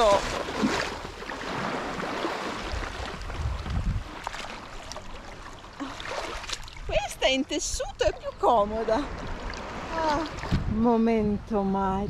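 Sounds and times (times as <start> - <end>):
sea water splashing: 0.0 - 10.7.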